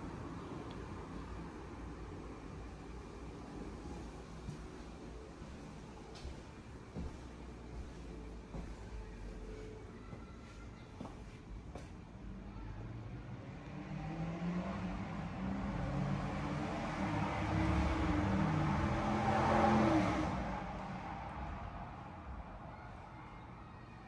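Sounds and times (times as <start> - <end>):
vehicle engine passing: 13.1 - 22.7.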